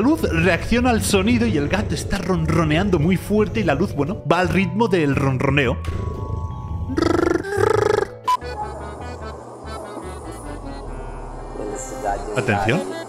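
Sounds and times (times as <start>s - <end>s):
cat making buzzing calls: 6.9s - 8.2s.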